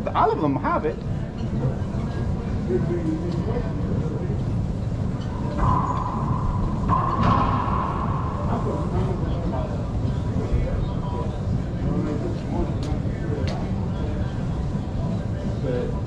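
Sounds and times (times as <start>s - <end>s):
steady low rumble: 3.7s - 12.2s.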